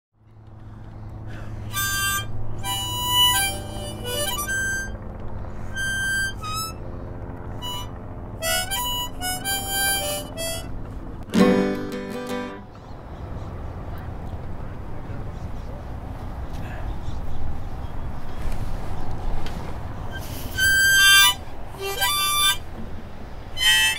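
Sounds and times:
harmonica folk melody: 1.5s - 12.7s, 20.1s - 22.7s, 23.4s - 23.9s.

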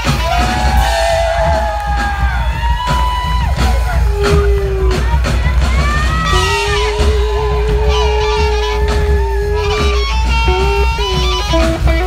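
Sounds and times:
crowd whooping and yelling: 0.0s - 12.0s
drum kit played hard: 0.0s - 12.0s
live rock music: 0.0s - 12.0s.

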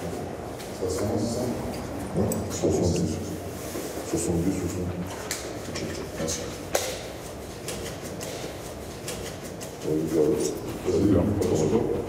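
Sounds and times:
people talking: 0.0s - 3.4s, 4.0s - 5.1s, 5.7s - 6.6s, 9.8s - 12.0s.

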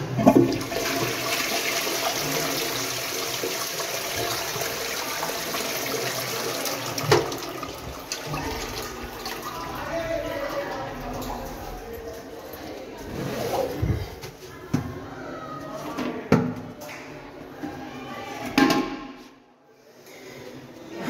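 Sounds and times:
toilet flushing water rush: 0.0s - 11.7s.

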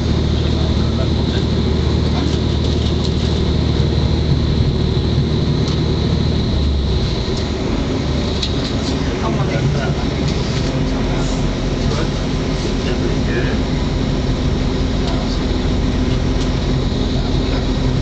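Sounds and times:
diesel engine hum: 0.0s - 18.0s.

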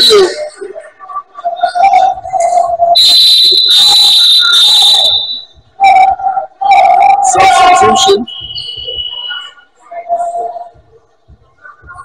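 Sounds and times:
referee's whistle long blast: 3.0s - 5.5s.

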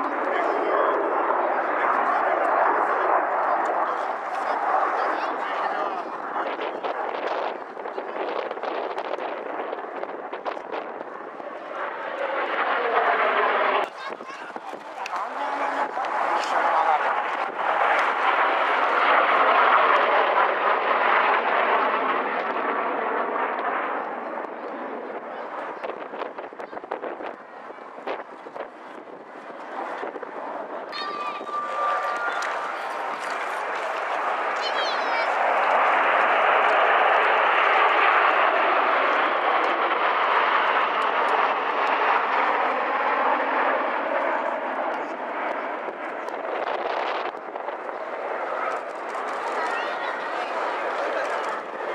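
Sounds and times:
jet aircraft flying overhead: 0.0s - 51.9s.

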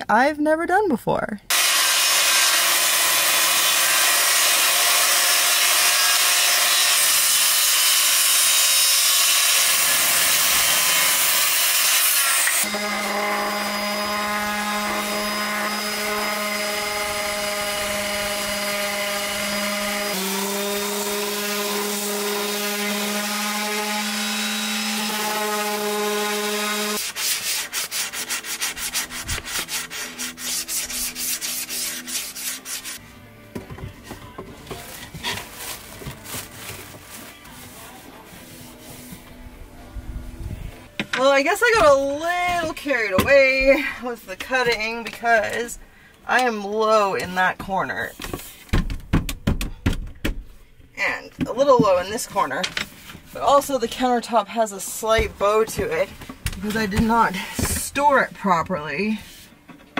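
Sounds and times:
circular saw cutting wood: 1.5s - 33.0s
orbital sander on wood: 1.5s - 33.0s.

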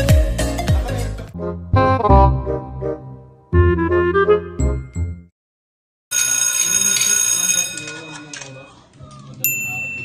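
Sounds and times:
music: 0.0s - 5.3s
people's voices: 7.8s - 10.0s.

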